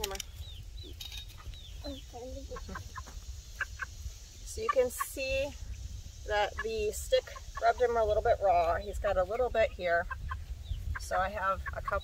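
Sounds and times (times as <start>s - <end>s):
chick peeping: 0.0s - 12.0s.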